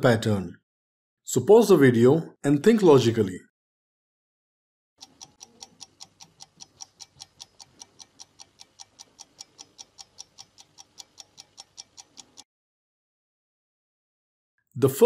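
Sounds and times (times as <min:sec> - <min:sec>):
clock ticking: 0:05.0 - 0:12.5.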